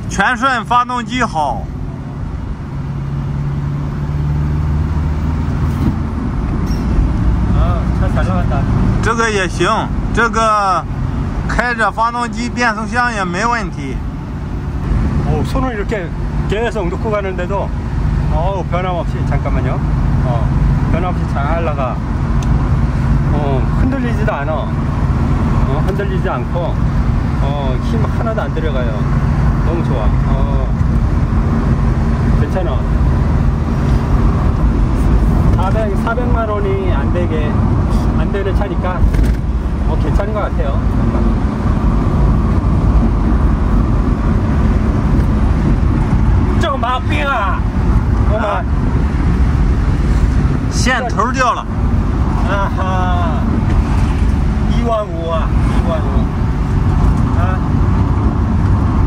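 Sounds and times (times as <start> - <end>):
van engine and road noise: 0.0 - 59.0.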